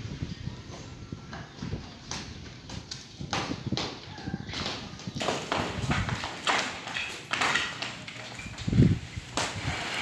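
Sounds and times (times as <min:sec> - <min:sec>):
demolition knocks and clattering: 0:03.4 - 0:10.0.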